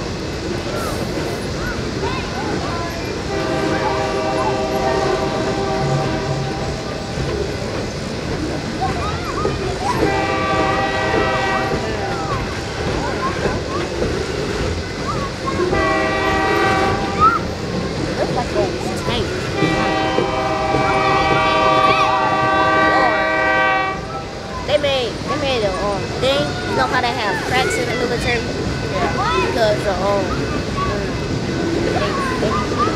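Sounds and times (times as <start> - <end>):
freight cars rolling on rails: 0.0 - 32.9
voices: 0.0 - 32.9
locomotive air horn: 3.3 - 6.9, 10.1 - 12.1, 15.7 - 17.2, 19.6 - 24.1.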